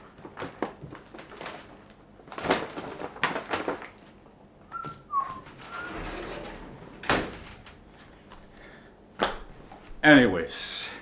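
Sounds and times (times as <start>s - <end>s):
short high squeaks: 5.2s - 8.0s
rustling: 5.2s - 9.8s.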